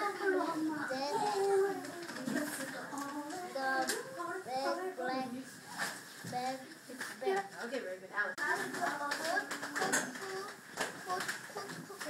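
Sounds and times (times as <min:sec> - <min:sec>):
children reading aloud: 0:00.0 - 0:07.5, 0:08.4 - 0:12.0.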